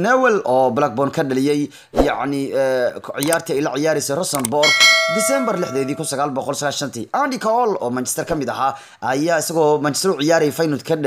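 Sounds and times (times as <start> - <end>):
man talking: 0.0 - 11.0
bell chime: 4.6 - 6.4.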